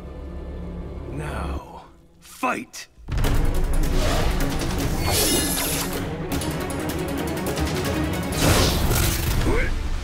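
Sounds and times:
action film music: 0.0 - 10.0.

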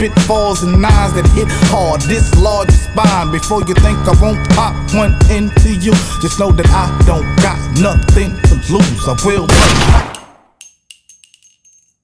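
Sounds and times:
metallic chime-like tings: 10.6 - 12.0.

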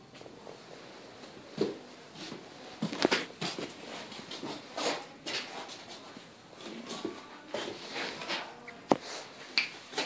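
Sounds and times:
sharp snaps: 8.7 - 10.0.

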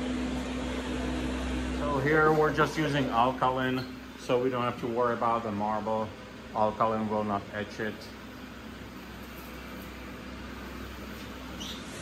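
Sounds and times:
low constant hum: 0.0 - 12.0
sprayer hissing: 7.6 - 12.0.

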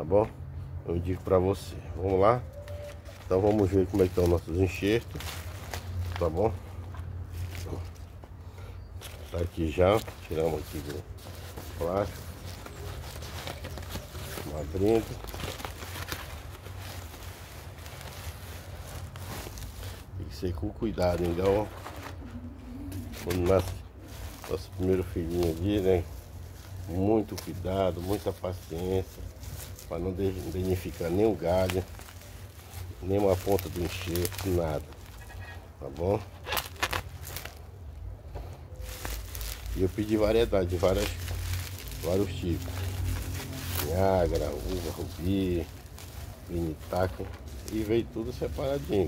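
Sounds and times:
plastic bag rustling: 1.0 - 49.0
cardboard tearing and crinkling: 2.7 - 6.6, 9.0 - 20.2, 20.9 - 22.3, 22.9 - 37.8, 38.8 - 49.0.

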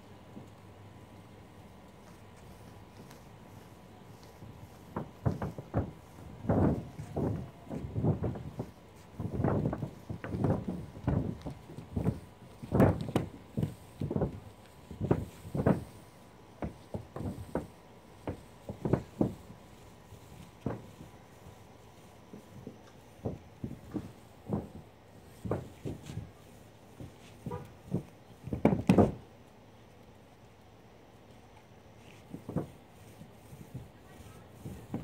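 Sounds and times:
footsteps on a roof: 0.1 - 29.3, 32.0 - 35.0.

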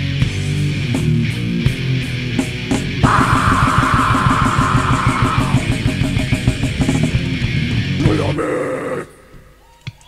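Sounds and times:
distorted electric guitars: 0.0 - 9.6
rapid drum beat: 1.7 - 8.4.

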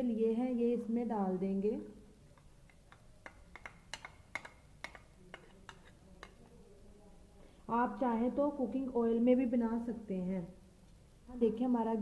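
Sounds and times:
knife tapping and scraping in bowl: 2.3 - 6.5.

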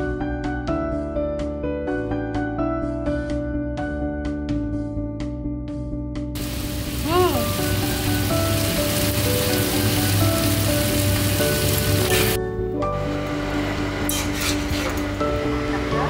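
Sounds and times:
background music: 0.0 - 16.0
food sizzling in a wok: 6.4 - 12.4.

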